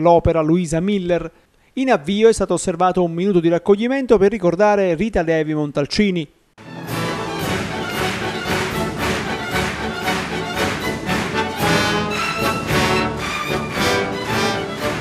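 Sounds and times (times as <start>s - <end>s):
orchestra playing lively classical piece: 6.6s - 15.0s.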